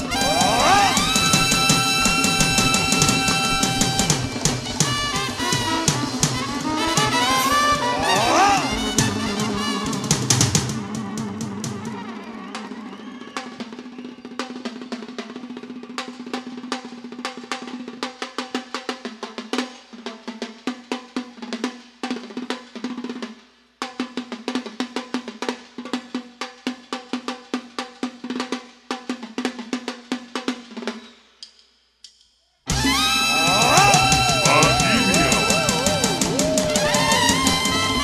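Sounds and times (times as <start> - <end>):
fast drum strokes: 0.0 - 12.0, 32.7 - 38.0
held note: 32.8 - 38.0.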